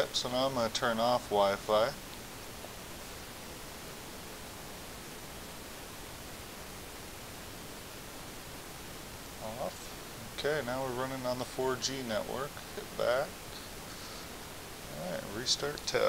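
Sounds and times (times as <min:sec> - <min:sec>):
steady recording hiss: 0:00.0 - 0:16.0.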